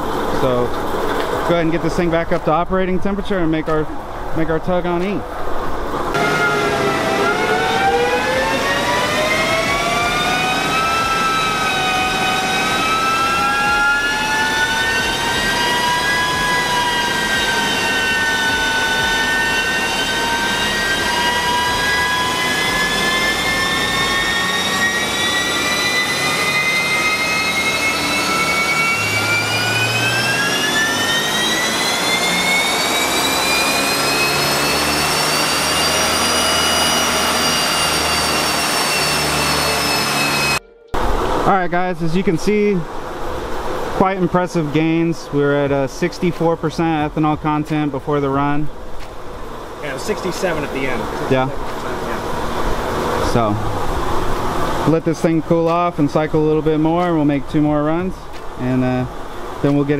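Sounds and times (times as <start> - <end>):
car engine whining on dyno: 0.0 - 59.9.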